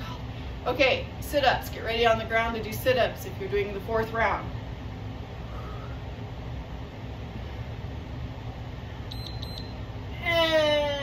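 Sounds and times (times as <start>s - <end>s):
short high timer beeps: 9.1s - 9.8s.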